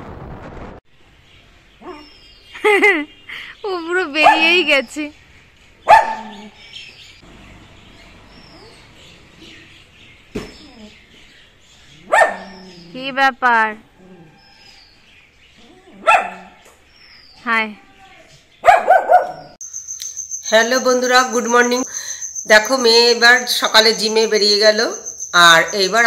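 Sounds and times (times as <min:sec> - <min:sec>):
person laughing: 0:02.6 - 0:03.6
dog barking: 0:04.2 - 0:04.6, 0:05.9 - 0:06.5, 0:12.0 - 0:12.7, 0:16.0 - 0:16.6, 0:18.6 - 0:19.6
faint bird chirps: 0:19.3 - 0:26.0
high-pitched insect-like trill: 0:19.6 - 0:26.0.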